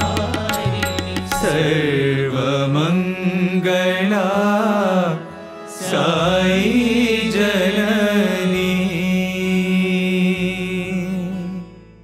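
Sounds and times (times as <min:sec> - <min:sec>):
person singing devotional song: 0:00.0 - 0:11.9
sustained accompaniment: 0:00.0 - 0:12.0.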